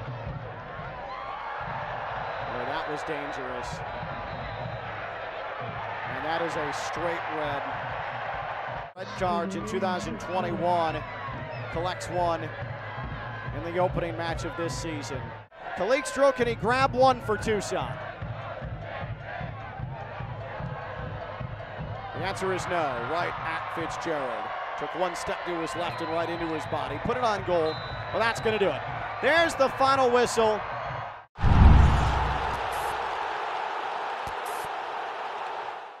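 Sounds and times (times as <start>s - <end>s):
stadium crowd noise: 0.0s - 36.0s
deep boom hit: 31.4s - 33.0s.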